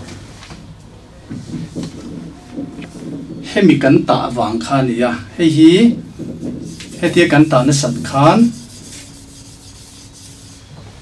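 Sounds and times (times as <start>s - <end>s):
rubbing on violin bow: 6.0s - 10.7s.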